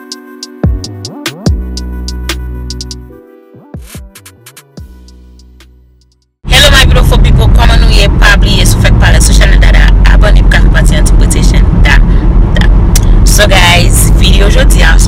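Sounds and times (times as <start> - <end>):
car cabin rumble: 6.5 - 15.0
woman talking: 6.5 - 15.0.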